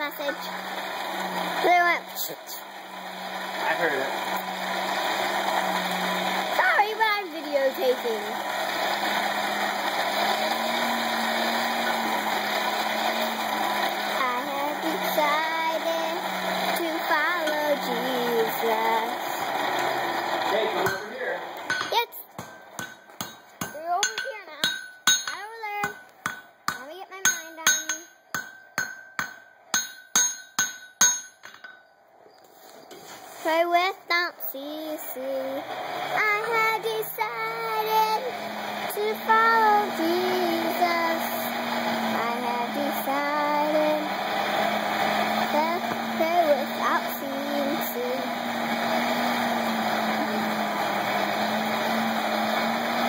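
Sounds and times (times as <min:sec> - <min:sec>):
forge air blower running: 0:00.0 - 0:30.8, 0:33.4 - 0:53.0.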